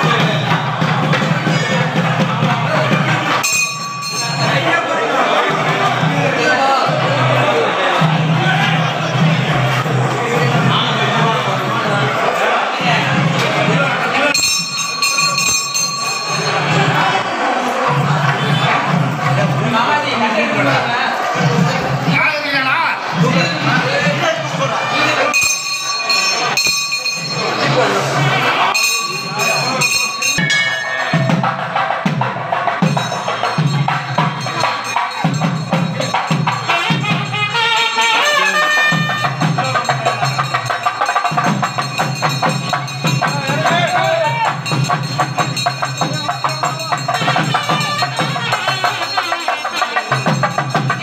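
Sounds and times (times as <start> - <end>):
crowd voices: 0.0 - 51.0
brass bell ringing: 2.9 - 6.0, 14.2 - 19.2, 24.4 - 51.0
procession music: 28.1 - 51.0.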